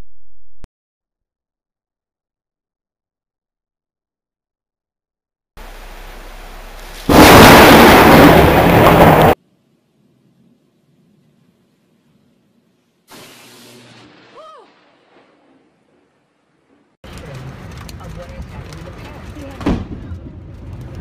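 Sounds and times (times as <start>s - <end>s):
loud thunderclap: 7.0s - 9.4s, 17.4s - 21.0s.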